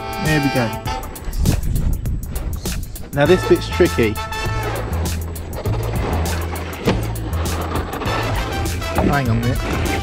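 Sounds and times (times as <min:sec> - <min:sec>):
background music with beat: 0:00.0 - 0:10.0.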